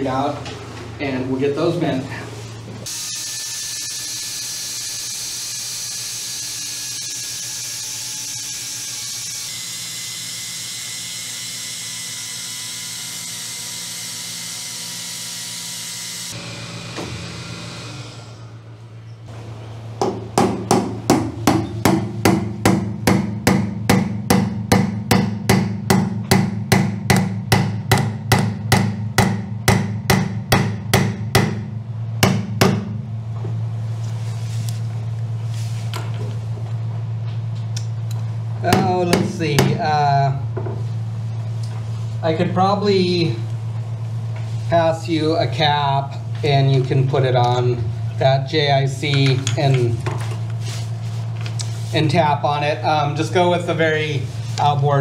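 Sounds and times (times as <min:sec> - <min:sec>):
whirring tool: 0:02.8 - 0:18.6.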